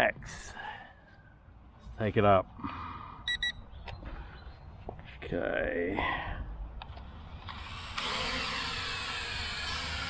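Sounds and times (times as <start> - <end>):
drone motors buzzing whine: 7.3 - 10.0.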